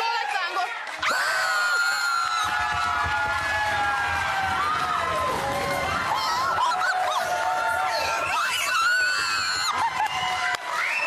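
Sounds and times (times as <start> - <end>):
people shrieking and laughing: 4.1 - 10.9.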